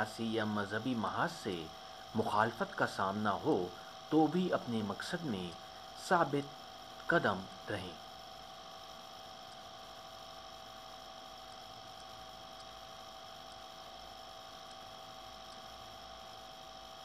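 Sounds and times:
electrical hum and hiss: 0.0 - 17.0
faint high whining tones: 0.0 - 17.0.

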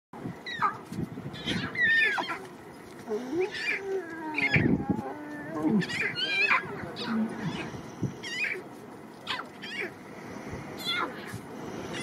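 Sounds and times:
lion cubs mewing: 0.4 - 10.1, 10.7 - 12.0.

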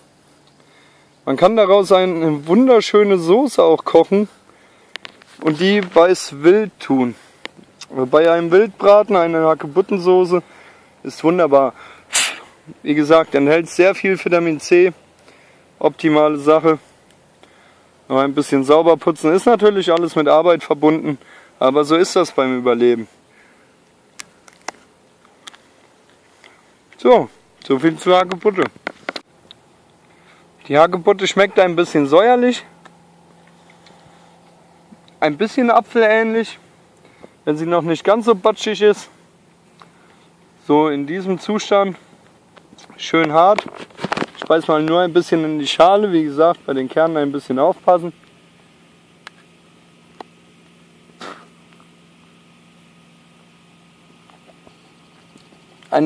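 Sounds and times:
steady low hum: 0.0 - 56.0
faint chewing ticks: 54.2 - 56.0.

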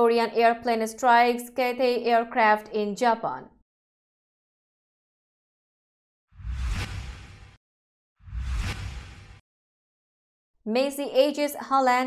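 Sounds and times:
whoosh sound effects: 6.4 - 7.6, 8.2 - 9.4.

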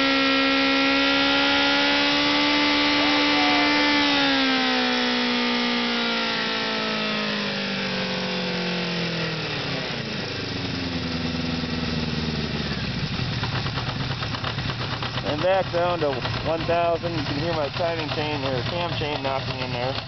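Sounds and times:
motorcycle engine revving then idling: 0.0 - 20.0
light engine knocking: 10.5 - 20.0.

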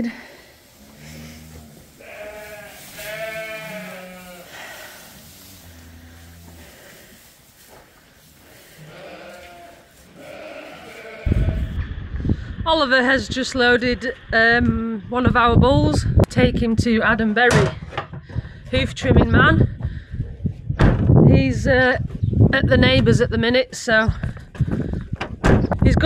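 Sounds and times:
sheep bleating: 0.9 - 4.9, 8.8 - 11.8
wind noise on microphone: 10.3 - 26.0.

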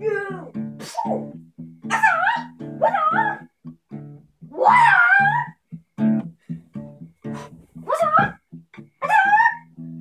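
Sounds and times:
high wavering cries: 0.0 - 3.5, 4.5 - 5.6, 7.3 - 8.4, 9.0 - 9.8
guitar music with plucked bass: 0.0 - 10.0.

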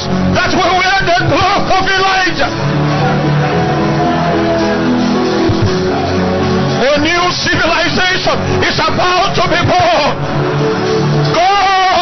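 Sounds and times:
sustained background music: 0.0 - 12.0.

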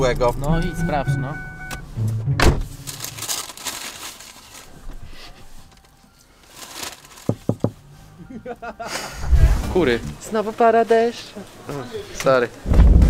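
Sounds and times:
paper wrapper crinkling: 2.8 - 7.4.

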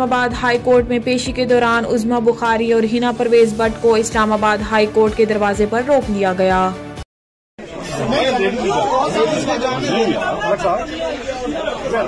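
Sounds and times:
crowd talking over one another: 7.6 - 12.0.

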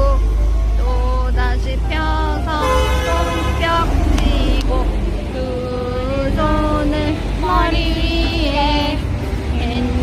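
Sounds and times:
city bus: 0.0 - 10.0
person singing: 0.0 - 10.0
road traffic rumble: 0.0 - 10.0.

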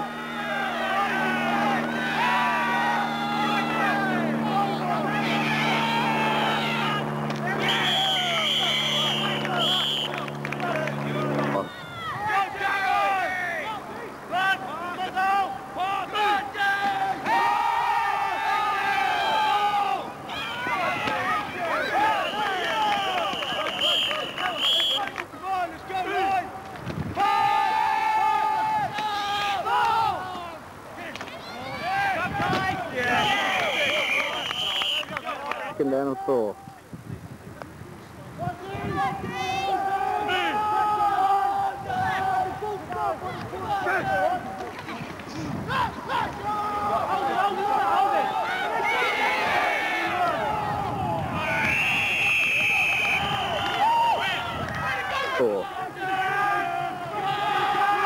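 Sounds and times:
players and spectators shouting: 0.0 - 36.8, 38.4 - 58.0.

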